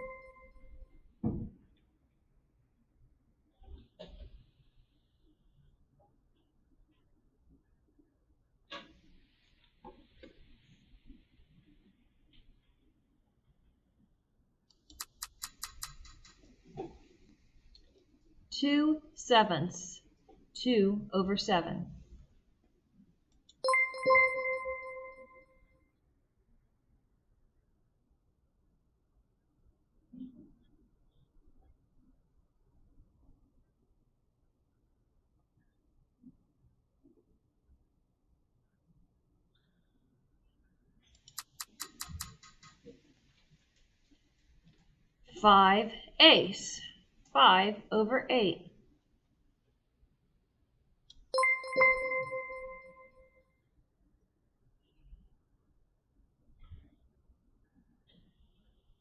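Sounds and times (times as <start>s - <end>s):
computer ticking sound effect: 0.0s - 0.5s, 23.6s - 25.4s, 51.4s - 53.2s
quick ticks: 14.7s - 16.4s, 41.2s - 42.9s
high shimmer: 23.6s - 25.4s.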